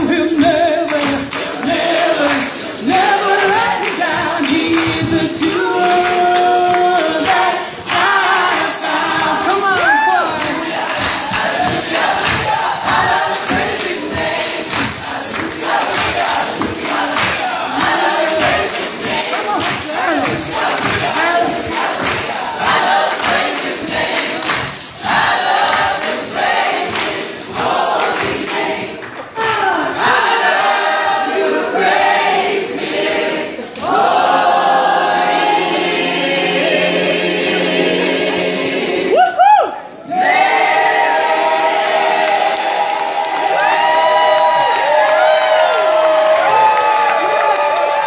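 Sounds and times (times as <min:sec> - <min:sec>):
choir singing gospel song: 0:00.0 - 0:39.2, 0:39.8 - 0:48.0
hands clapping on the beat: 0:00.4 - 0:29.4, 0:42.0 - 0:48.0.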